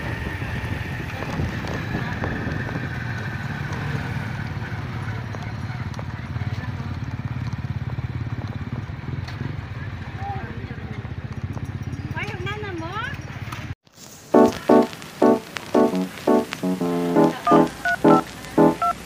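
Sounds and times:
person speaking: 14.4s - 19.0s.

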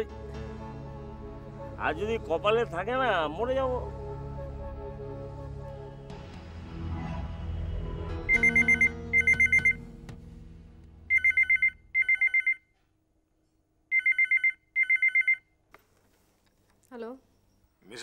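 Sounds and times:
background music: 0.0s - 11.9s
desk telephone ringing: 8.4s - 9.8s, 11.1s - 12.6s, 13.9s - 15.4s.

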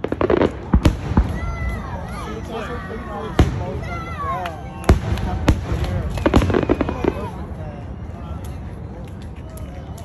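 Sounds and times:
fireworks bursting with bangs: 0.0s - 1.8s, 4.8s - 7.4s
fireworks crackling: 0.0s - 9.4s
people chattering: 0.0s - 10.0s.

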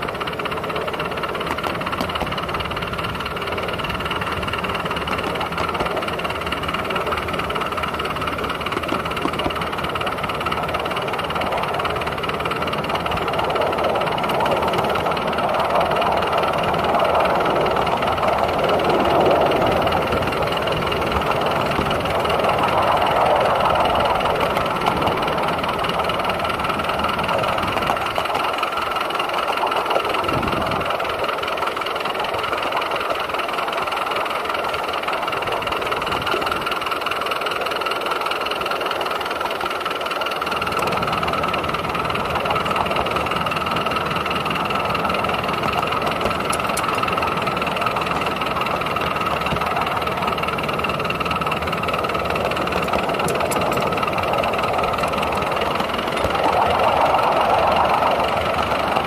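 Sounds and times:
steam locomotive running: 0.0s - 59.0s.

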